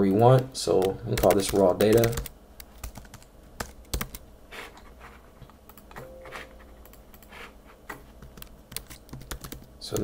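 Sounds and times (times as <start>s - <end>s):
computer keyboard typing: 0.3s - 4.2s, 8.2s - 10.0s.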